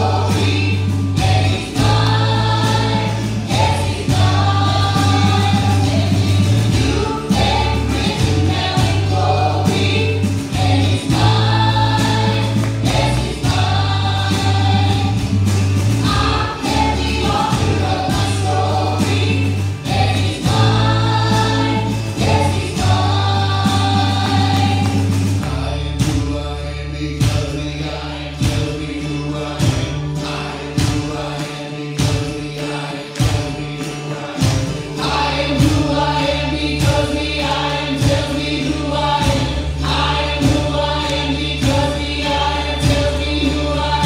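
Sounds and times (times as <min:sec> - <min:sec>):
deep steady bass line: 0:00.0 - 0:31.2
acoustic and electric guitars: 0:00.0 - 0:44.0
several voices singing together: 0:00.0 - 0:44.0.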